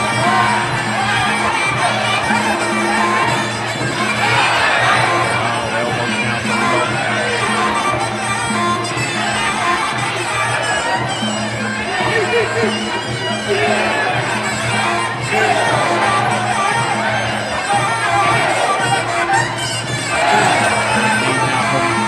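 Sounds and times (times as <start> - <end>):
crowd voices: 0.0 - 22.0
reedy oboe melody: 0.0 - 22.0.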